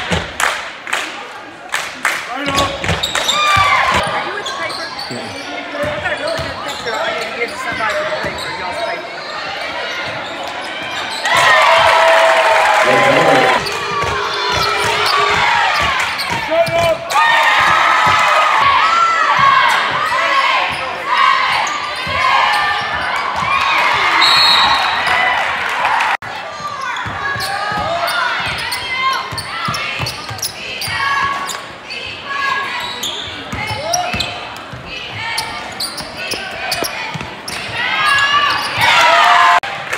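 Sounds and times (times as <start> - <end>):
spectators' voices and shouts: 2.3 - 30.0
sneakers squeaking on hardwood: 2.8 - 9.0, 32.8 - 39.0.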